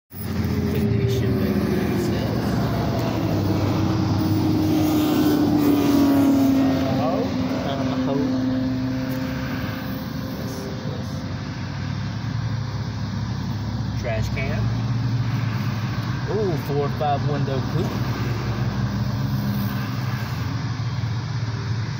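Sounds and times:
cars passing heard from inside car: 0:00.1 - 0:21.9
vehicle engine passing by: 0:00.1 - 0:21.9.

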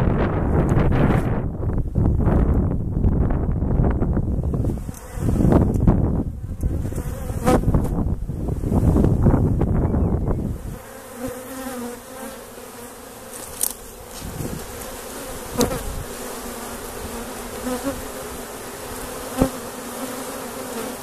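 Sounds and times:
honeybees humming: 0:04.2 - 0:21.0
bees zipping past: 0:04.6 - 0:08.0, 0:09.9 - 0:21.0.

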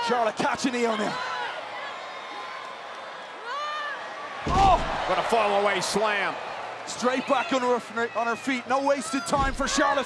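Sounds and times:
crowd noise: 0:00.0 - 0:10.0
body thud on wrestling ring: 0:04.4 - 0:05.1.

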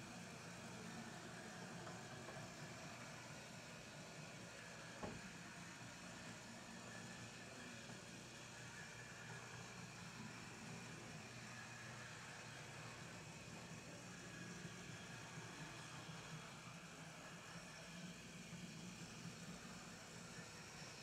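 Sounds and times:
model train motor hum: 0:00.0 - 0:21.0.

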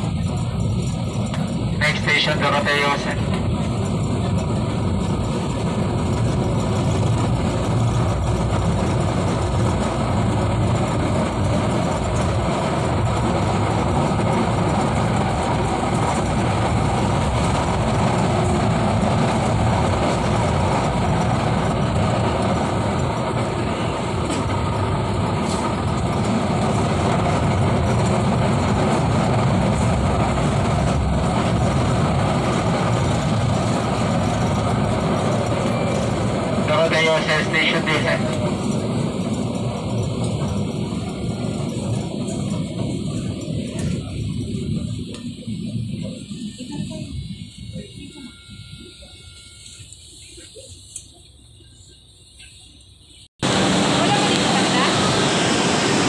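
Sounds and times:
train rumbling on rails: 0:00.0 - 0:56.0.

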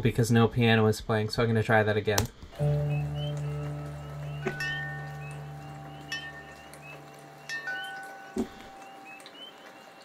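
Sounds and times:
low synth tone: 0:02.5 - 0:09.2
faint rain: 0:02.5 - 0:10.0
frog chorus chirping: 0:02.6 - 0:10.0
wind chimes ringing: 0:04.1 - 0:09.6.

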